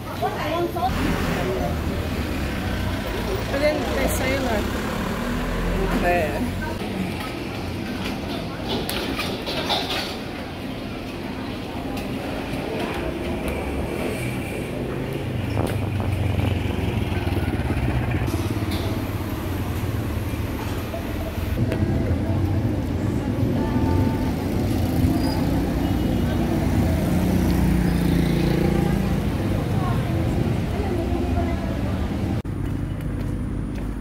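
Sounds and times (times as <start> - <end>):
cars and motorcycles passing: 0.0 - 8.7, 10.5 - 34.0
road traffic rumble: 0.0 - 34.0.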